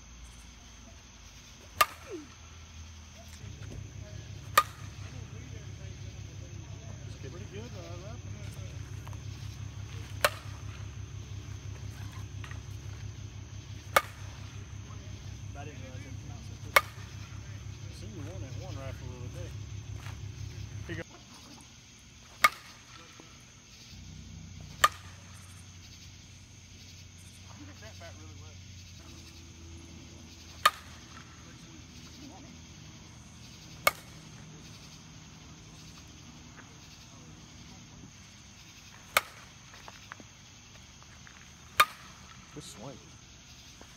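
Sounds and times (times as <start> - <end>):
bat cracking softballs: 1.2 - 21.1, 22.2 - 26.3, 29.0 - 43.9.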